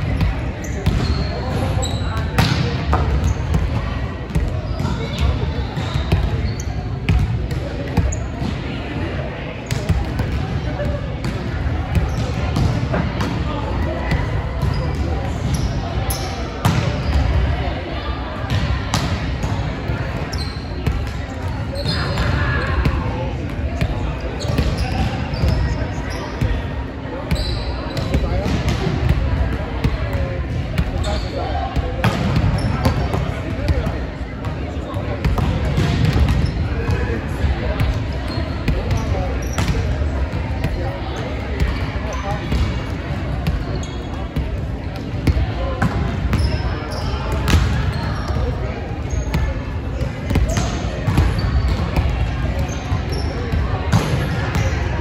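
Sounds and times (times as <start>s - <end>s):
volleyballs smacking and bouncing: 0.0s - 6.4s, 7.0s - 15.5s, 31.7s - 43.7s, 44.3s - 54.8s
indistinct chatter of players: 0.0s - 55.0s.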